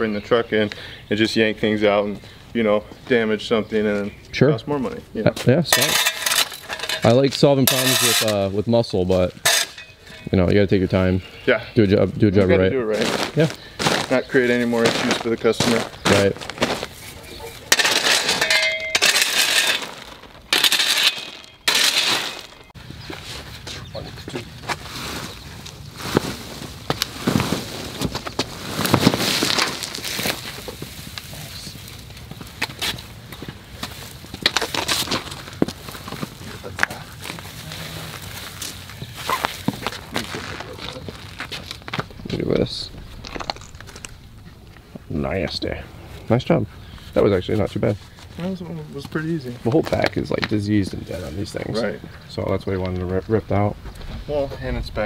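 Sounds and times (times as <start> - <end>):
crackling and rustling of roots: 1.6 - 55.0
stones clinking against metal blade: 5.8 - 8.4, 17.7 - 22.7
digging tool scraping rocky soil: 5.8 - 8.5, 17.7 - 22.7, 26.2 - 31.3.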